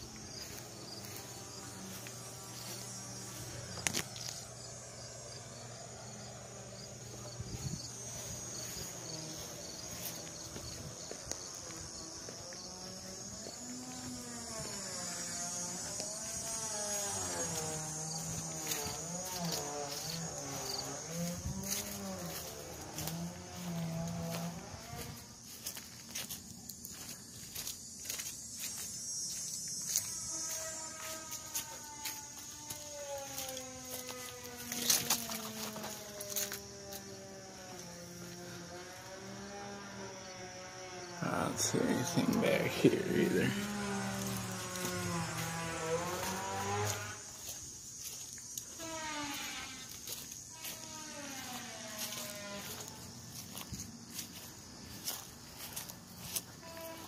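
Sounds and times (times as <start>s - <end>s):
footsteps: 0.0s - 4.4s, 6.9s - 39.7s, 41.3s - 57.0s
crickets chirping: 0.0s - 57.0s.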